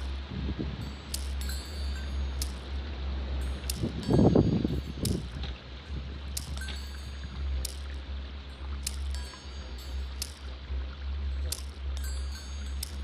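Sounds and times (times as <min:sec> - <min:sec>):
steady low drone: 0:00.0 - 0:13.0
wind chimes ringing: 0:00.0 - 0:13.0.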